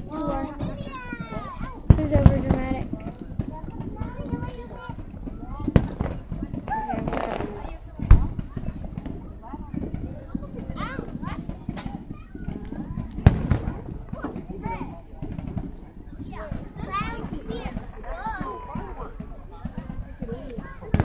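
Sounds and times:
fireworks booms: 0.0s - 21.0s
fireworks pops: 0.2s - 21.0s.

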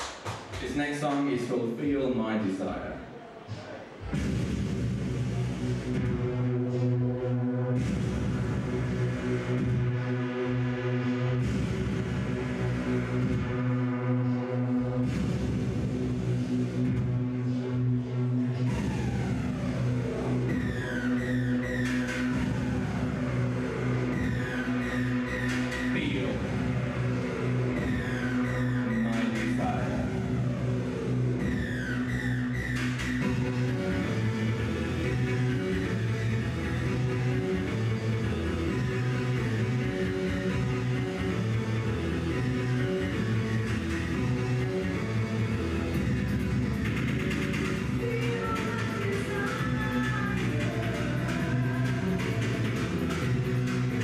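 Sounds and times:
synth-pop on keyboard synthesizer: 3.0s - 54.0s.

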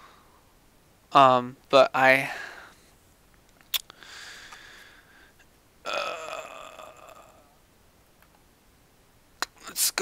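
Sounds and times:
man breathing: 0.0s - 0.6s, 2.2s - 3.0s, 3.9s - 5.5s
man saying uh: 9.5s - 10.0s.

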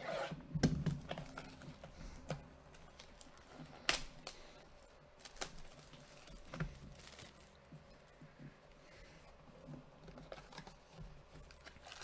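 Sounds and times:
cellophane wrap crinkling: 1.0s - 8.2s, 10.0s - 12.0s.

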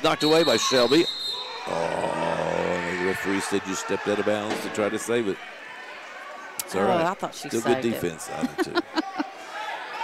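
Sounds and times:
thin high whistle tone: 0.2s - 1.8s.

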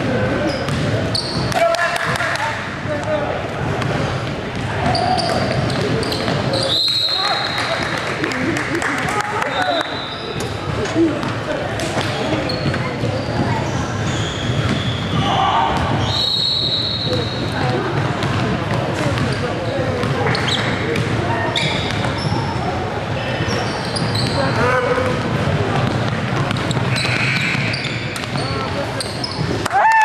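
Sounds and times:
echoing voices: 0.0s - 29.6s
sneakers squeaking: 0.0s - 29.7s.

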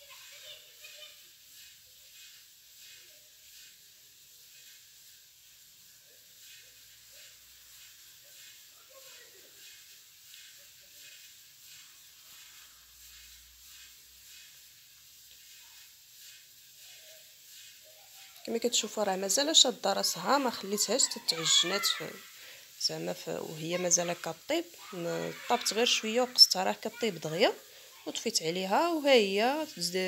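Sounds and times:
low steady hiss: 0.0s - 30.0s.

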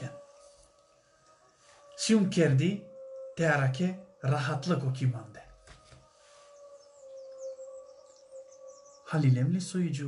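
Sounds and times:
faint bird chirping: 4.0s - 10.0s.

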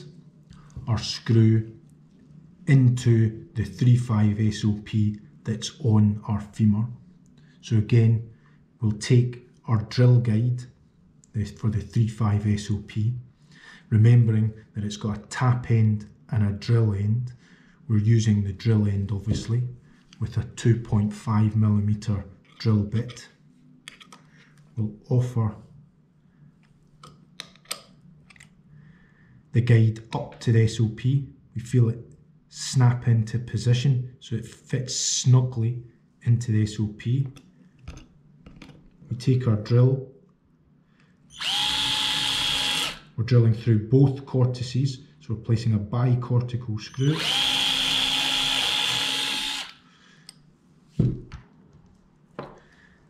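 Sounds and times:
small metallic clicks: 27.0s - 28.6s
power drill whining: 41.3s - 43.1s, 46.9s - 49.8s.

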